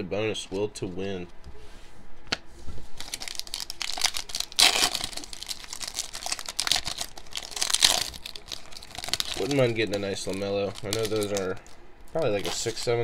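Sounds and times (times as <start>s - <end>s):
foil wrapper crinkling and tearing: 3.0s - 13.0s.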